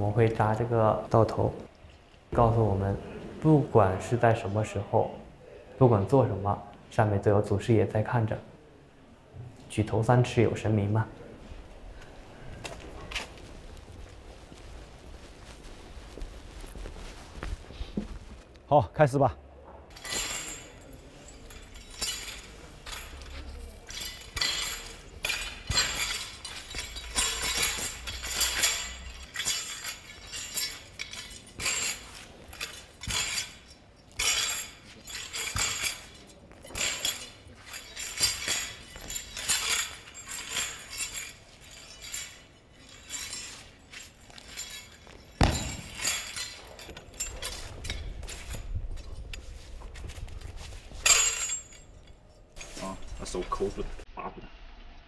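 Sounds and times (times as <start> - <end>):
metal rings clinking and jangling: 19.9 - 54.0.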